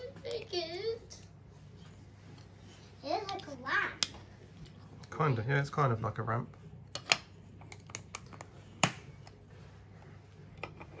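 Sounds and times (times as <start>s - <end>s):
child speaking: 0.0s - 1.2s, 3.0s - 4.1s.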